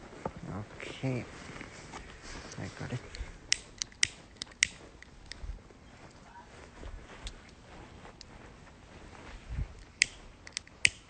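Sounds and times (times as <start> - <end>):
lighter clicking: 3.5 - 4.8, 10.0 - 11.0.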